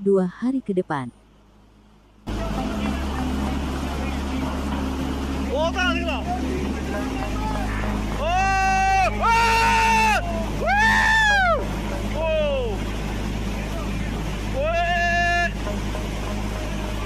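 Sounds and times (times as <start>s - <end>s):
steady low rumble: 0.0s - 17.0s.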